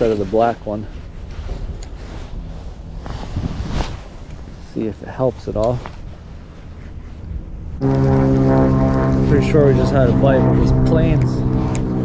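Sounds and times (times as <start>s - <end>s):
low wind rumble: 0.0s - 12.0s
propeller plane droning overhead: 6.0s - 12.0s.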